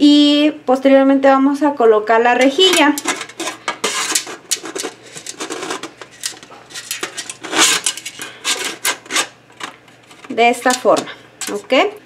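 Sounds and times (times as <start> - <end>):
metal steamer rack clinking in pot: 2.4 - 3.4.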